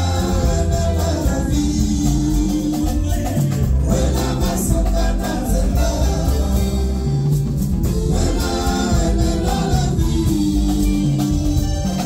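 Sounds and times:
live rumba band playing: 0:00.0 - 0:12.0
singers singing together: 0:00.0 - 0:12.0.

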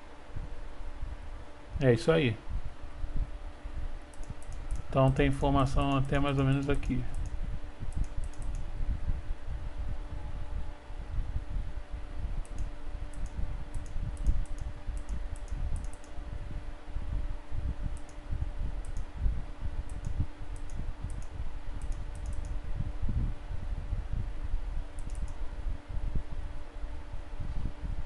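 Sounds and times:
faint steady hum: 0:00.0 - 0:28.0
computer mouse clicking: 0:04.1 - 0:05.2, 0:06.6 - 0:08.7, 0:12.4 - 0:16.2, 0:18.0 - 0:18.2, 0:18.8 - 0:19.1, 0:19.9 - 0:22.6, 0:25.0 - 0:25.4.

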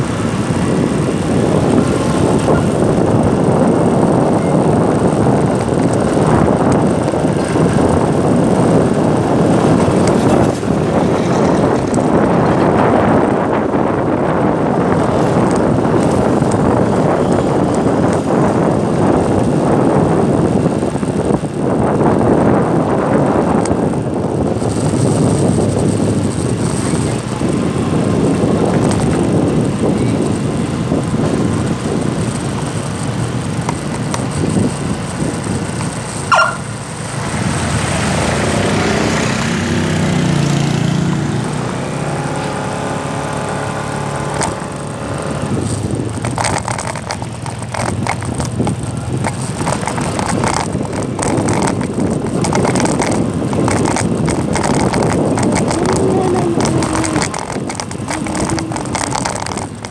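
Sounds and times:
motorcycle engine hum: 0:00.0 - 0:59.9
tire noise on the road: 0:00.0 - 0:59.9
wind buffeting microphone: 0:00.0 - 0:59.9.

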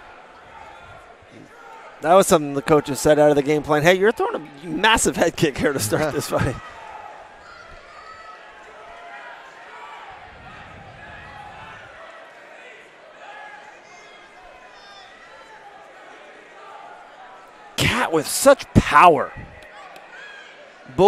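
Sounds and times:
crowd shouting: 0:05.5 - 0:21.0.

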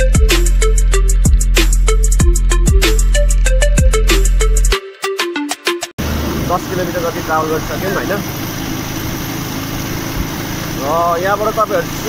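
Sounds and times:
motorcycle engine running: 0:06.0 - 0:12.0
road noise: 0:06.0 - 0:12.0.

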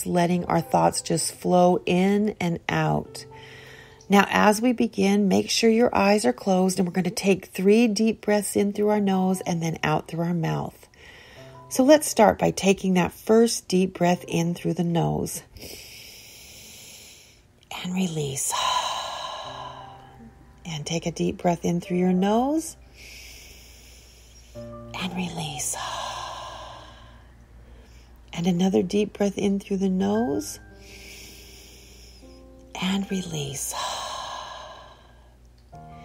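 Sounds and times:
soft background music: 0:00.0 - 0:36.0
woman breathing in through nose: 0:03.4 - 0:04.1, 0:10.9 - 0:11.6, 0:15.5 - 0:17.5, 0:18.5 - 0:20.2, 0:22.9 - 0:24.8, 0:25.8 - 0:28.2, 0:30.7 - 0:32.5.

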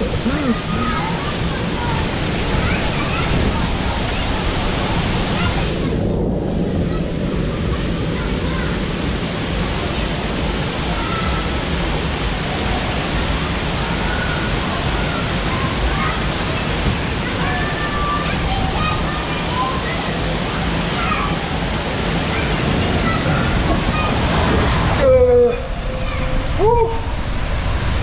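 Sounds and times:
distant voices: 0:00.0 - 0:28.0
water rushing and splashing: 0:00.0 - 0:28.0.

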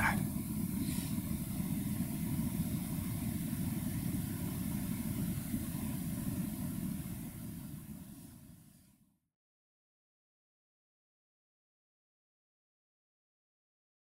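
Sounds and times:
faint hiss: 0:00.0 - 0:09.2
low room rumble: 0:00.0 - 0:09.2.

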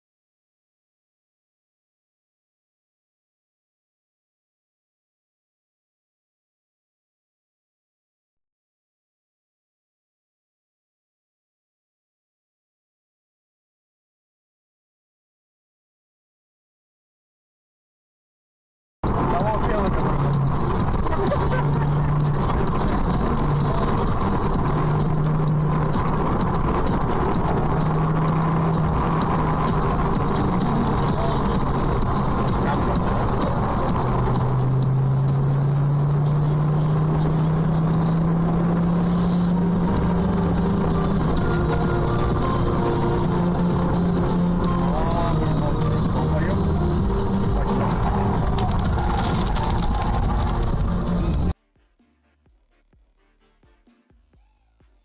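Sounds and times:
road noise inside car: 0:19.0 - 0:51.6
car engine accelerating: 0:19.0 - 0:55.0.

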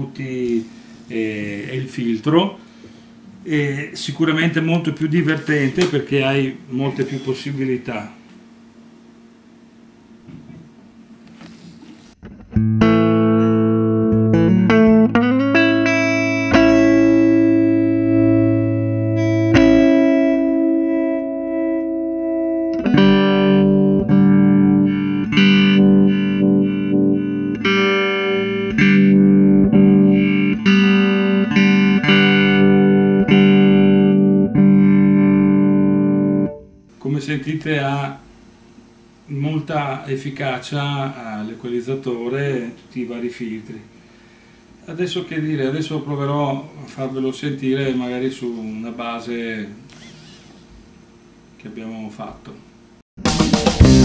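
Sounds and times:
electric guitar chords: 0:12.2 - 0:36.9, 0:53.2 - 0:54.0.

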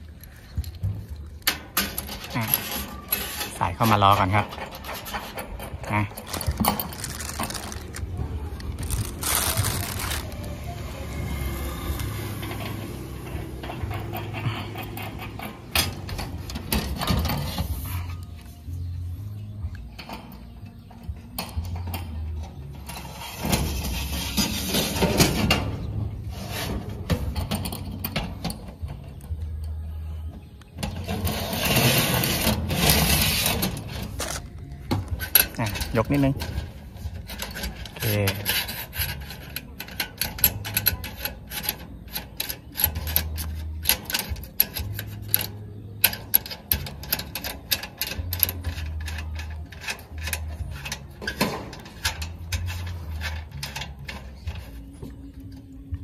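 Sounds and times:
metal rail clicking and knocking: 0:12.4 - 0:17.7, 0:30.8 - 0:54.8.

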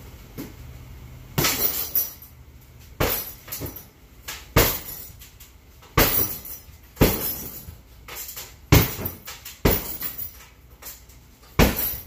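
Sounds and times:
punching bag being struck: 0:01.4 - 0:02.0, 0:03.0 - 0:03.8, 0:04.5 - 0:05.1, 0:06.0 - 0:07.7, 0:08.7 - 0:10.3, 0:11.6 - 0:12.0
chain rattling: 0:01.4 - 0:02.4, 0:04.6 - 0:12.0.

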